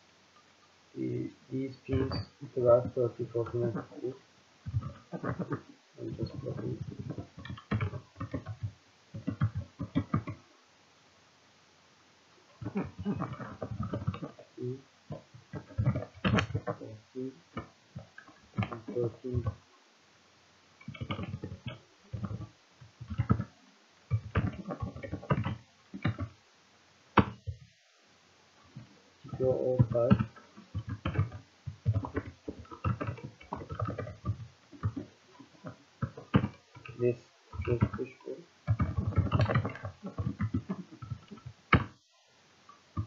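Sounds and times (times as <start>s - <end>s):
man speaking low: 1.0s - 4.2s, 5.2s - 7.2s, 14.2s - 14.9s, 16.6s - 17.4s, 18.7s - 19.5s, 29.3s - 30.2s, 37.0s - 38.5s
computer keyboard typing: 4.6s - 10.4s, 12.6s - 14.4s, 15.1s - 16.8s, 20.8s - 23.5s, 24.1s - 26.4s, 29.4s - 37.0s, 37.6s - 38.0s, 38.7s - 41.9s.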